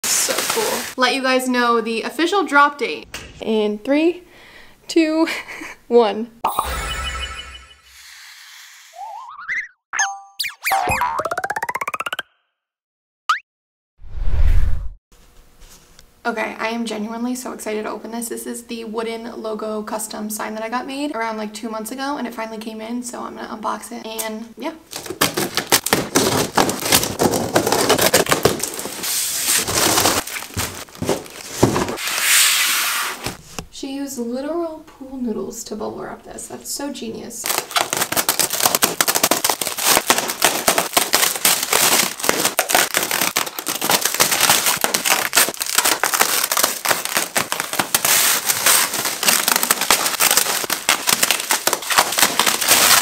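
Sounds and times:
springy rising boing: 9.0s - 12.3s
cardboard box tearing: 25.0s - 32.3s, 37.5s - 53.0s.

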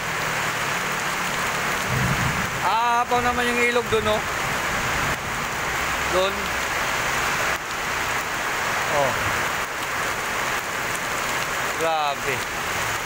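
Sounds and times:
heavy rain pouring: 0.0s - 13.0s.

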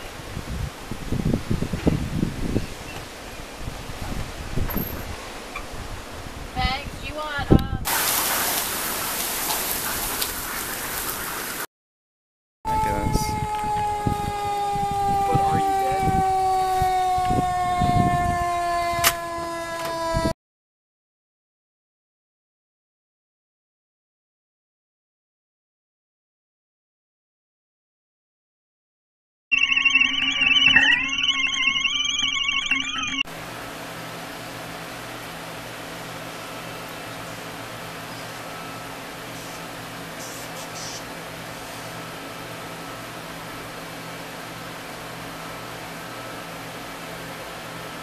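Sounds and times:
heavy rain falling: 7.9s - 11.6s
warbling high-pitched electronic tones: 29.5s - 33.3s.

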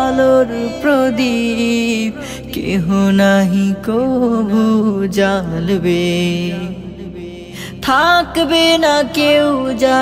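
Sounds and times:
man singing devotional song: 0.0s - 10.0s.

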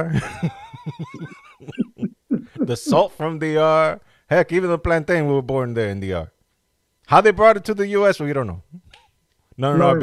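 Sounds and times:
man laughing: 0.0s - 3.2s.

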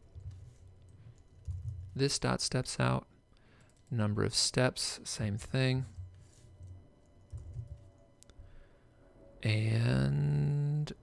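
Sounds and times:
faint keyboard typing: 0.0s - 2.1s, 3.5s - 4.0s, 5.8s - 8.4s.

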